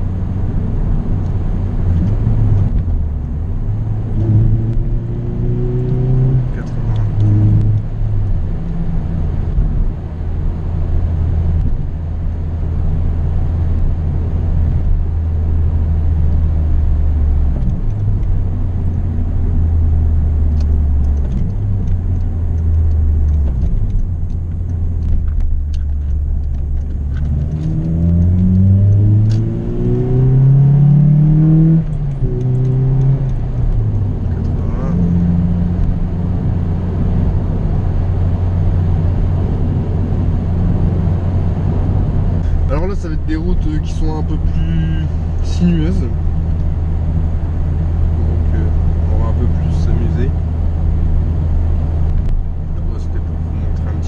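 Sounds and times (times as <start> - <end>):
car engine drone from cabin: 0.0 - 54.0.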